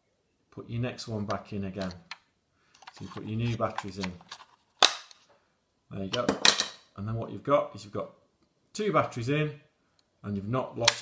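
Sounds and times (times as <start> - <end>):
battery snapping into contacts: 2.8 - 5.2.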